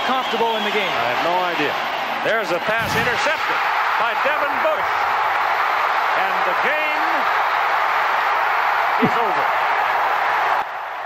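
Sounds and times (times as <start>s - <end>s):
commentator speaking: 0.0s - 4.9s, 6.2s - 7.2s
stadium crowd cheering: 0.0s - 11.0s.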